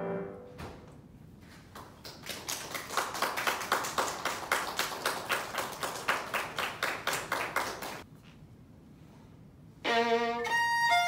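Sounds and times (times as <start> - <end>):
piano piece: 0.0 - 0.8
audience applauding: 2.0 - 8.0.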